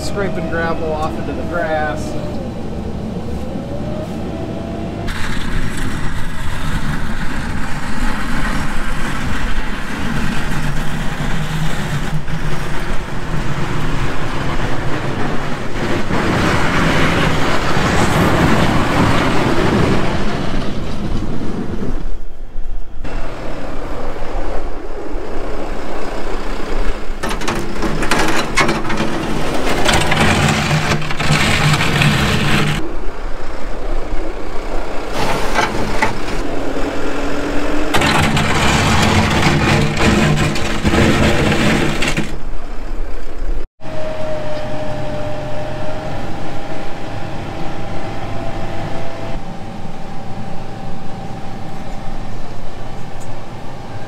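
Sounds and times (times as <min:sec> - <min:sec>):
tractor diesel engine running: 0:00.0 - 0:20.0, 0:27.2 - 0:32.8, 0:34.5 - 0:42.6.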